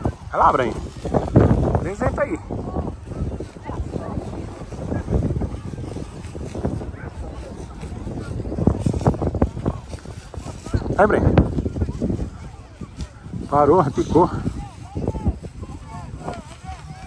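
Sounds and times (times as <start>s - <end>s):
indistinct voices talking: 0.0s - 17.0s
wind rumbling on microphone: 0.0s - 17.0s.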